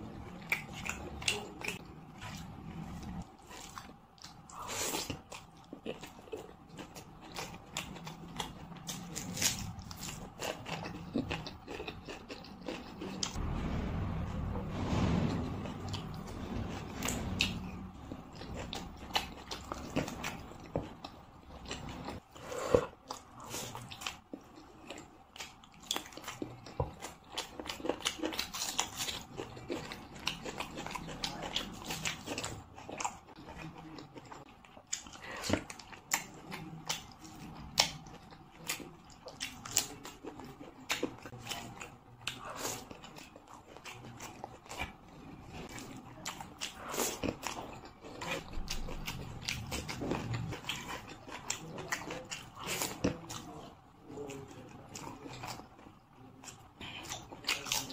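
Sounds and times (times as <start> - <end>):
person chewing with wet smacks: 0.3 - 13.4, 18.3 - 57.9.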